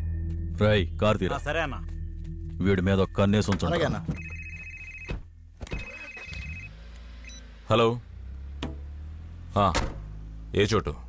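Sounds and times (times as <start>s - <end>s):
mobile phone ringing: 4.1s - 7.4s.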